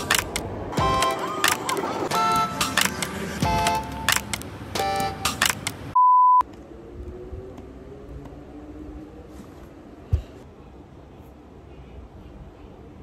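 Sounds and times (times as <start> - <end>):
upbeat electronic intro music: 0.0 - 5.6
loud high beep: 6.0 - 6.4.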